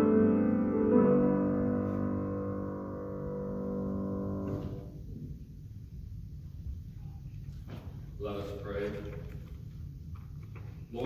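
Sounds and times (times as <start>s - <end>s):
piano chord ringing: 0.0s - 5.3s.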